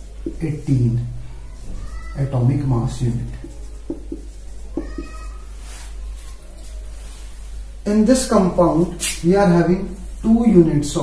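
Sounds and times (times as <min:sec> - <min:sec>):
low electrical hum: 0:00.0 - 0:11.0
marker squeaking on whiteboard: 0:00.2 - 0:00.8, 0:01.6 - 0:06.7.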